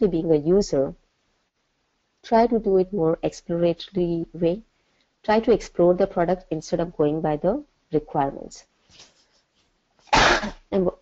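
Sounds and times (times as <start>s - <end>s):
person coughing: 10.1s - 10.6s.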